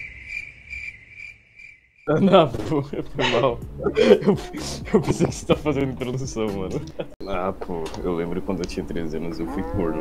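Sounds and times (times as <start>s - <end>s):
cricket chirping: 0.0s - 2.1s.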